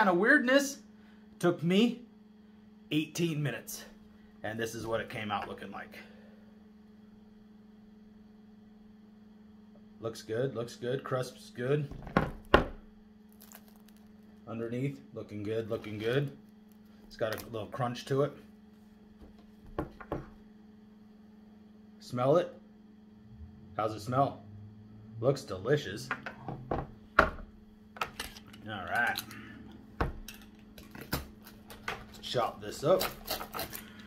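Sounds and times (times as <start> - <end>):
low steady hum: 0.0 - 34.0
pizza knocking on hard surface: 19.2 - 20.4.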